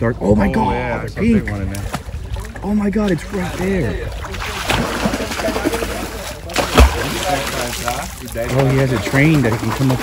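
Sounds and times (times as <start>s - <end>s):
hand splashing water: 1.7s - 10.0s.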